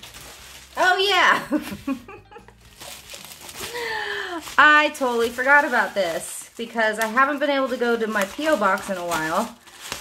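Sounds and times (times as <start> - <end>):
bubble wrap rustling: 0.0 - 10.0.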